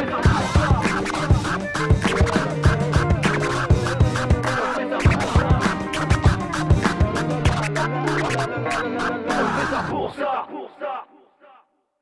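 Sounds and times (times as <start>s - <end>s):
hip hop beat: 0.0s - 10.1s
vinyl record scratching: 0.0s - 10.1s.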